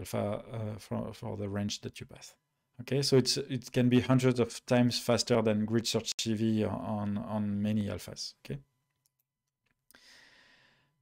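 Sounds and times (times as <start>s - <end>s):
soft in-breath: 9.9s - 11.0s.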